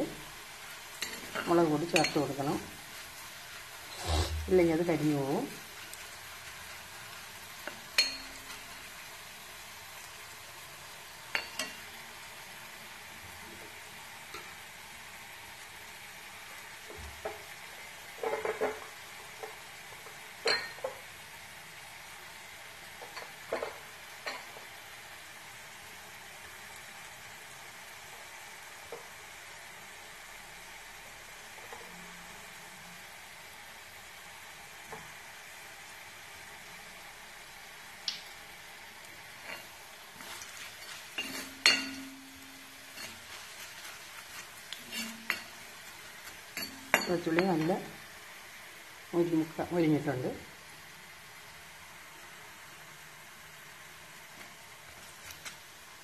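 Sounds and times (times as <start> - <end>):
garlic sizzling in oil: 0.0 - 56.0
spoon scraping pan: 0.9 - 5.7, 39.4 - 47.8.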